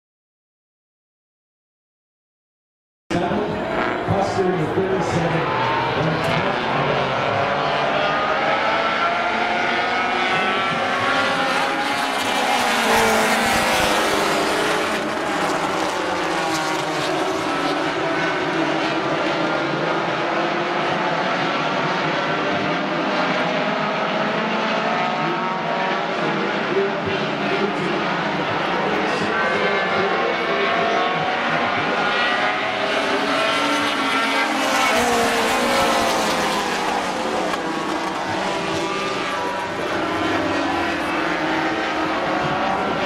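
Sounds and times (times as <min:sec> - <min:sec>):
racing car engines passing: 0:03.1 - 0:43.0.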